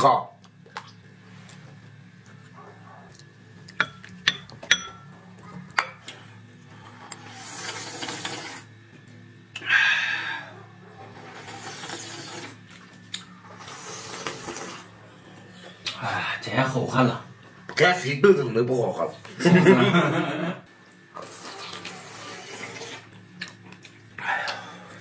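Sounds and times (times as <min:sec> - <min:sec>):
utensils clinking on porcelain bowls: 0:03.8 - 0:05.1
soup slurping: 0:07.0 - 0:08.7, 0:11.1 - 0:12.6, 0:13.4 - 0:15.0, 0:21.2 - 0:23.1.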